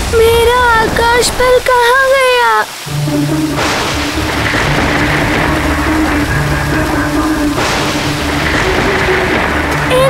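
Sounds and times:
dramatic background score: 0:00.0 - 0:10.0.

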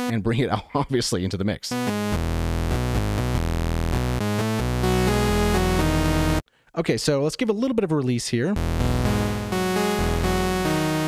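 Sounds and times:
buzzy synthesizer low notes: 0:01.7 - 0:06.4, 0:08.6 - 0:11.0.

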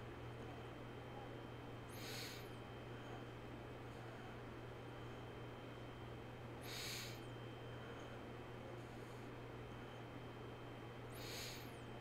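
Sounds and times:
steady low hum: 0:00.0 - 0:12.0
soft breath through the nose: 0:01.9 - 0:02.5, 0:06.6 - 0:08.2, 0:11.1 - 0:11.8.

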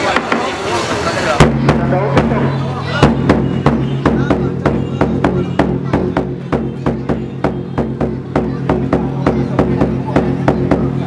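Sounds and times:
crowd chatter: 0:00.0 - 0:11.0
sharp drum hits: 0:01.4 - 0:11.0.

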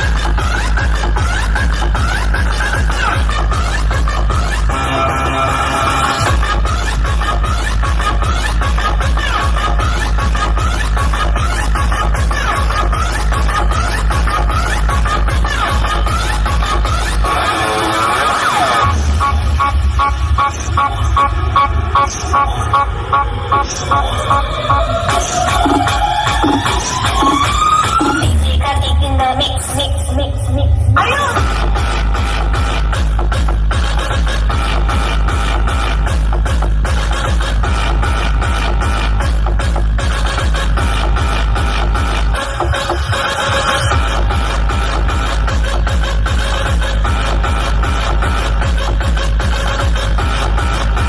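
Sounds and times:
loud electronic dance music: 0:00.0 - 0:51.0.

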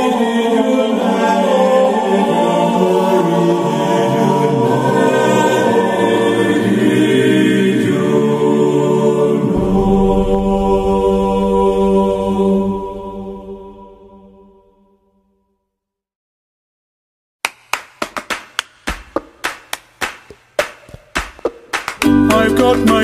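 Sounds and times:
choir chanting: 0:00.0 - 0:15.2
deep bass voices: 0:09.3 - 0:14.0.

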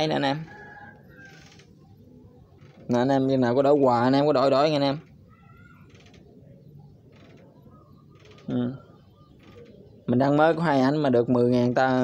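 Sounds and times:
low background noise: 0:00.0 - 0:12.0
faint animal call: 0:05.2 - 0:06.6.

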